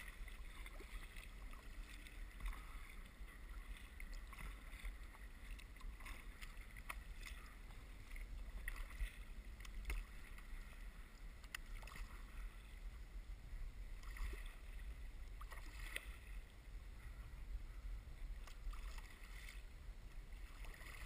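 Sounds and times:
paddle water splashing: 0.0 - 21.0
steady low rumble: 0.0 - 21.0.

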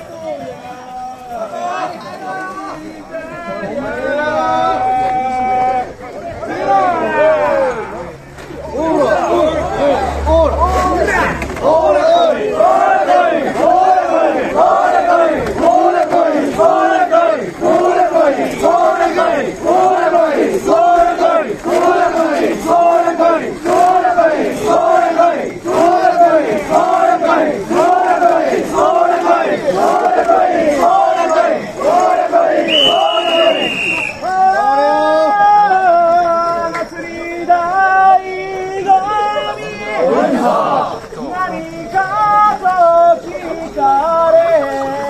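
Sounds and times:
crowd chanting in unison: 1.4 - 45.0.

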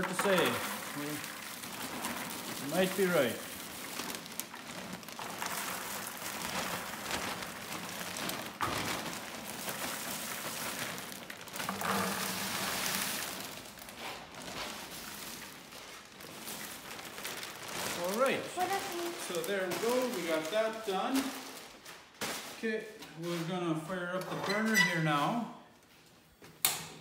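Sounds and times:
person speaking: 0.0 - 1.3, 2.6 - 3.5, 17.9 - 21.5
plastic bag crinkling: 0.0 - 22.7
popcorn pouring into pails: 0.0 - 25.4.

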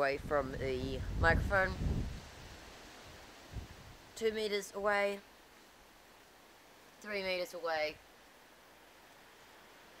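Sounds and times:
wind rumble: 0.0 - 4.2
trees rustling: 0.0 - 10.0.

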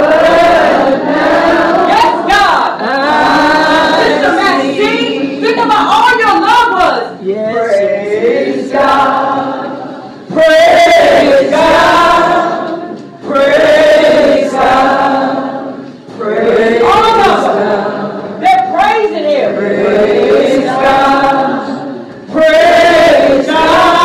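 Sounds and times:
woman singing with vibrato: 0.0 - 24.0.

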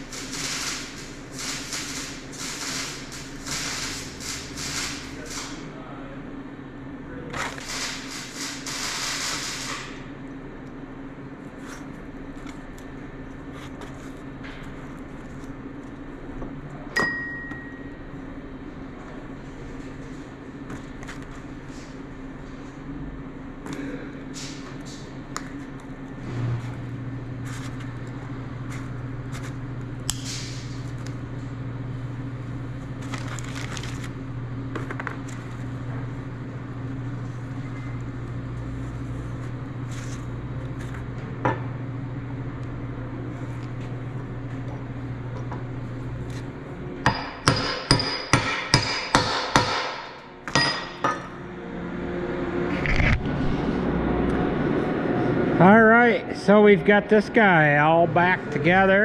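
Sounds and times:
steady low hum: 0.0 - 59.0.

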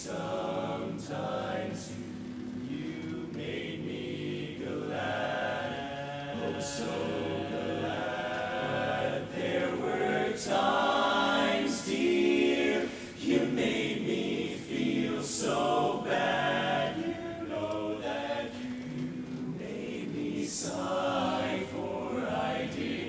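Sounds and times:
men's chorus singing a cappella: 0.0 - 23.0.

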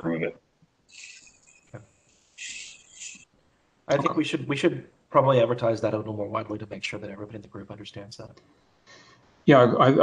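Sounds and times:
microphone hiss bursts: 0.8 - 4.6
person saying okay: 3.9 - 4.6.

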